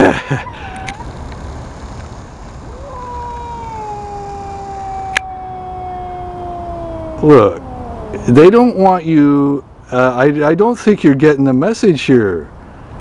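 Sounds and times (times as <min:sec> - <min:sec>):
cat yowling: 0:00.4 - 0:01.1, 0:02.6 - 0:09.3.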